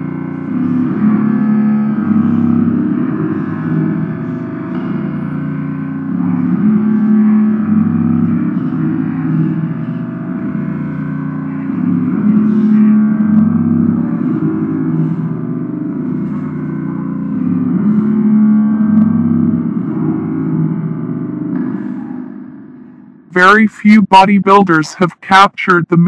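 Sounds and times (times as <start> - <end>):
low gong-like tones: 0.0 - 23.2.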